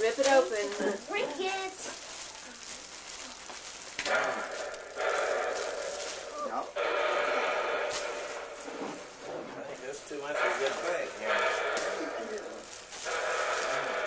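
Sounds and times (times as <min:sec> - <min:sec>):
plastic bag crinkling: 0:00.0 - 0:14.0
long drawn-out voices: 0:04.0 - 0:14.0.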